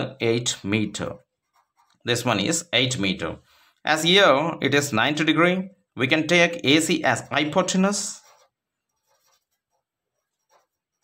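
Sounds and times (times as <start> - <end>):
marker pen scratching on paper: 0.5 - 2.6, 7.1 - 11.0.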